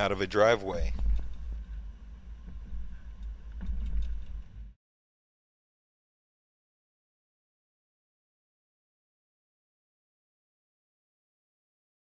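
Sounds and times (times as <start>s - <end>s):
low wind: 0.0s - 4.8s.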